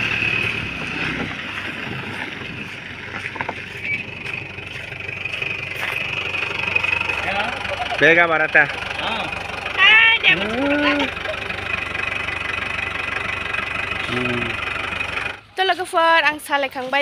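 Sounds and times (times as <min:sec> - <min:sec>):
diesel engine rumbling: 0:00.0 - 0:17.0
tyres on gravel: 0:00.0 - 0:17.0.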